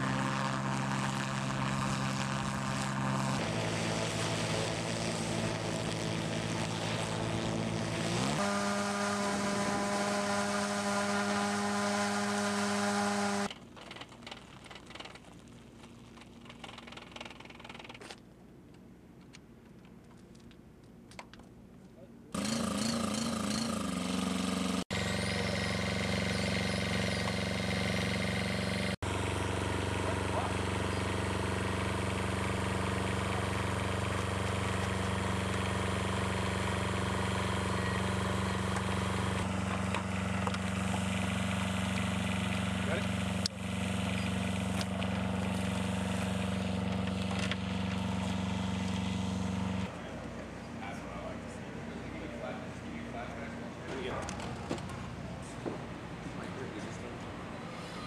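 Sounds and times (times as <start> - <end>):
small engine running: 0.0 - 15.2, 22.3 - 55.2.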